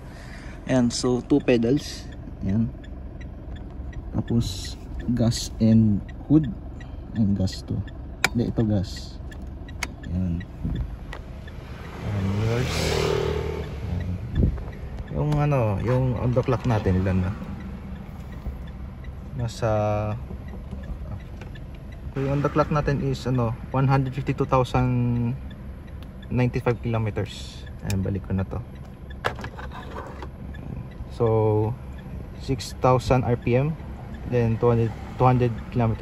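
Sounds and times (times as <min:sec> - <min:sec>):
diesel engine revving: 0:00.0 - 0:36.0.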